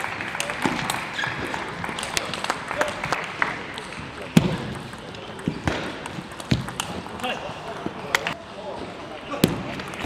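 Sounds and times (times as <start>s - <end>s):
table tennis ball clicking: 4.7s - 7.2s.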